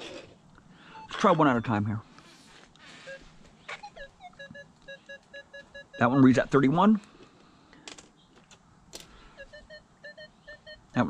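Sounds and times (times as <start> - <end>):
metal detector short beeps: 9.4 - 11.0.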